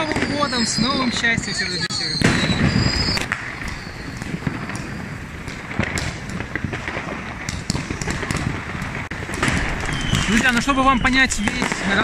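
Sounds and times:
fireworks bangs and crackles: 0:00.0 - 0:12.0.

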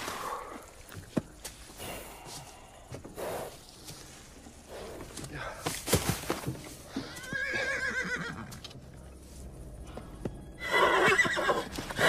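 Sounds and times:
hooves knocking on ground: 0:00.1 - 0:08.8
horse whinnying: 0:07.0 - 0:08.6, 0:10.6 - 0:11.8.

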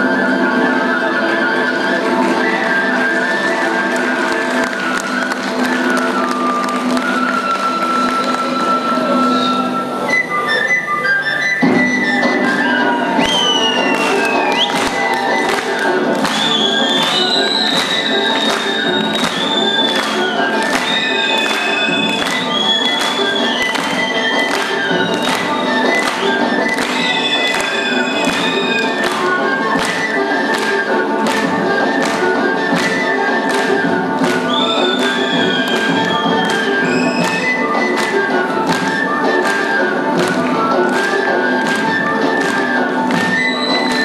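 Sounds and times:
folk melody: 0:00.0 - 0:44.0
frame drum beat: 0:11.7 - 0:44.0.

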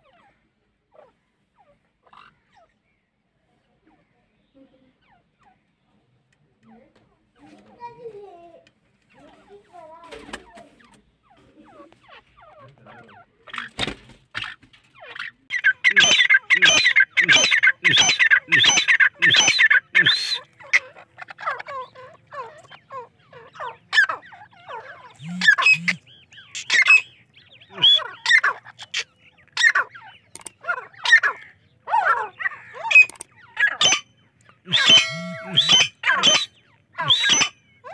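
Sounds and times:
partridges calling: 0:00.0 - 0:03.0, 0:10.2 - 0:37.9.

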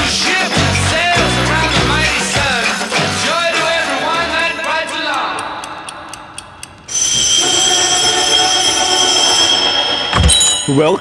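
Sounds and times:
music from turntable: 0:00.0 - 0:04.6
loud held tones: 0:06.9 - 0:11.0.

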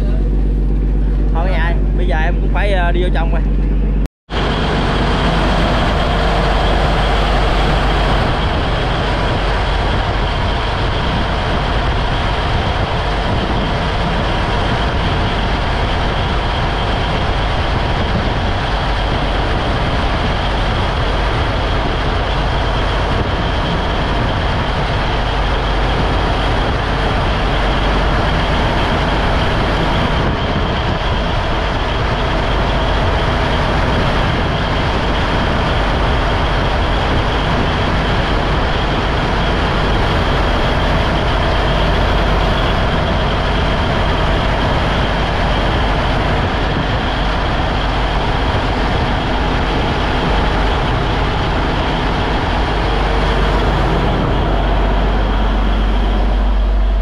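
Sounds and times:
diesel engine drone: 0:00.0 - 0:57.0.

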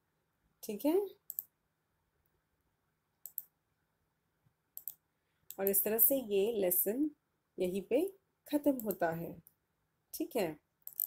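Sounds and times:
faint computer mouse clicks: 0:01.3 - 0:01.5, 0:03.2 - 0:03.5, 0:04.8 - 0:05.8, 0:08.8 - 0:09.6.

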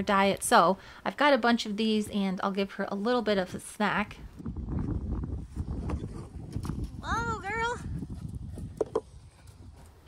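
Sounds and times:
hooves thudding on dirt: 0:04.4 - 0:10.0.

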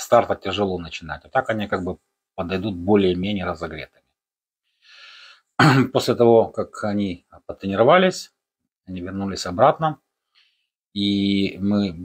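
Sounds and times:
man speaking: 0:00.0 - 0:04.0, 0:05.6 - 0:10.1, 0:10.9 - 0:12.0
man breathing in: 0:04.6 - 0:05.5.

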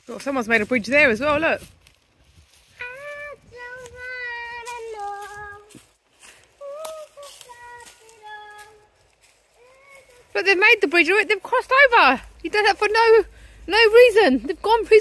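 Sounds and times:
child singing: 0:02.8 - 0:05.8, 0:06.6 - 0:09.0, 0:09.6 - 0:10.3.

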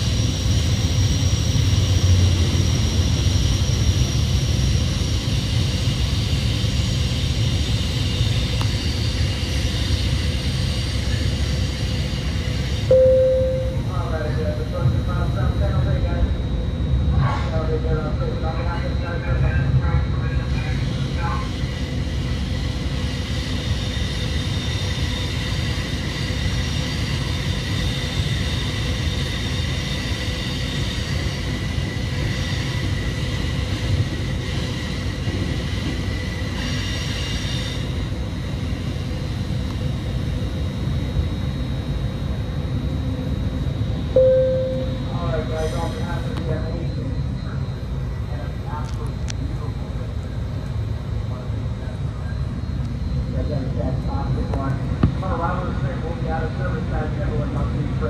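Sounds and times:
train carriage rumble: 0:00.0 - 0:58.0
high whine: 0:12.1 - 0:16.8, 0:44.0 - 0:47.7.

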